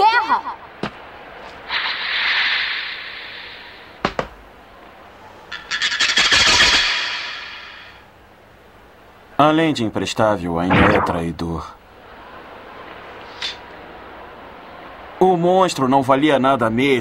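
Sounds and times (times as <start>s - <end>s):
bright swish: 10.7s - 11.2s
rushing whoosh: 10.7s - 11.2s.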